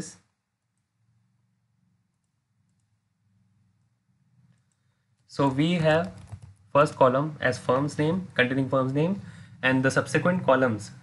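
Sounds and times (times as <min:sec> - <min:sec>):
faint low hum: 0:00.0 - 0:11.0
computer mouse clicks: 0:02.1 - 0:03.0.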